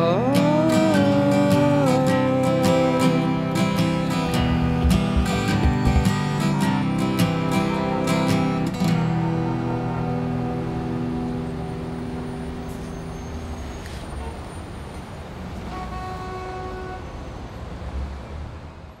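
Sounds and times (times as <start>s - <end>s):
acoustic guitar chord ringing: 0.0s - 12.8s
city traffic rumble: 0.0s - 19.0s
steady pitched tone: 1.7s - 8.1s.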